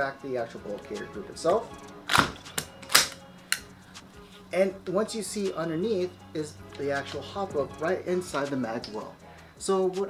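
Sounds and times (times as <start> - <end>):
rifle bolt metallic clicks: 2.1 - 3.7.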